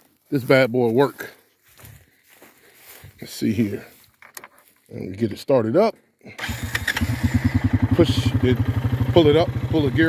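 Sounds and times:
atv engine starting and idling: 0:06.3 - 0:10.0.

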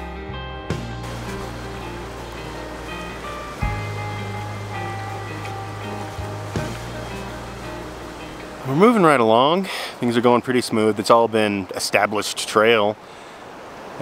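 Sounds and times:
background music: 0:00.0 - 0:09.2
rushing mountain creek: 0:00.7 - 0:14.0.

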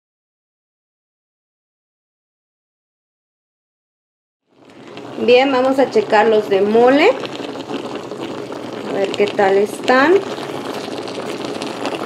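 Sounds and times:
water boiling with steam hiss: 0:04.5 - 0:12.0.

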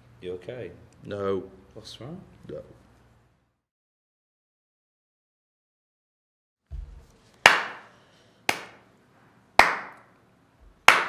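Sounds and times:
slow hand claps with echo: 0:07.4 - 0:08.9, 0:09.6 - 0:10.1, 0:10.7 - 0:11.0.

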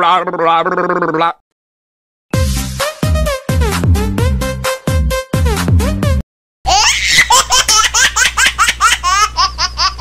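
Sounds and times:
background music: 0:02.4 - 0:06.2
high-pitched laughter: 0:06.7 - 0:10.0.

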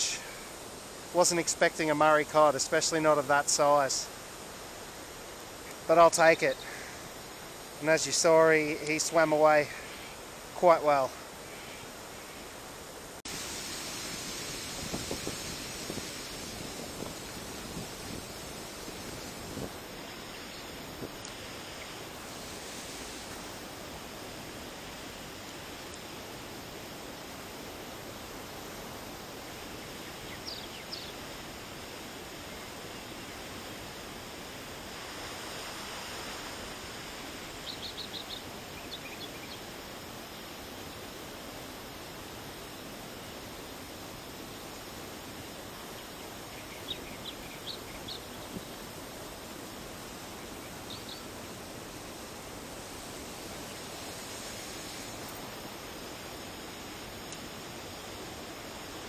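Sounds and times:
hiss of moving air and water: 0:00.0 - 0:59.0
small birds chirping: 0:29.7 - 0:31.3, 0:37.6 - 0:39.7, 0:45.8 - 0:48.9, 0:50.3 - 0:51.6.

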